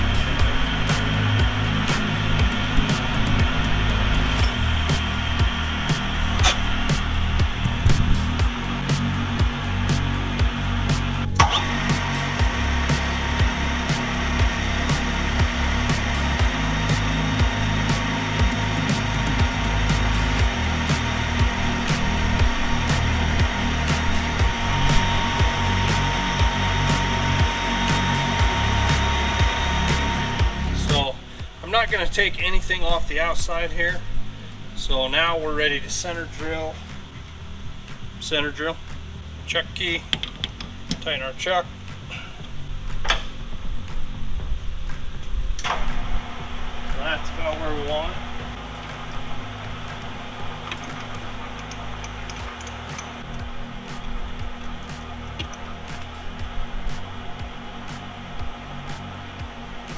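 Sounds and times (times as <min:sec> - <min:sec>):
metal lathe cutting: 0:00.0 - 0:33.6
background music: 0:00.0 - 0:59.9.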